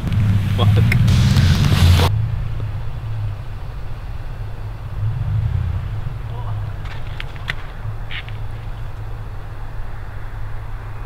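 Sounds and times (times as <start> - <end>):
truck engine running: 0.0 - 9.9.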